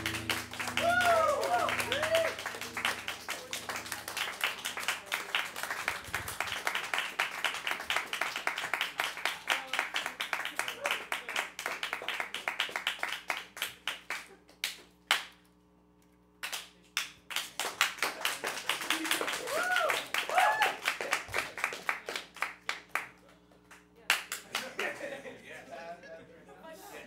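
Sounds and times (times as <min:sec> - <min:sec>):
small audience clapping: 0:00.0 - 0:15.5, 0:16.4 - 0:25.3
short whoops: 0:00.7 - 0:02.5, 0:19.4 - 0:20.8.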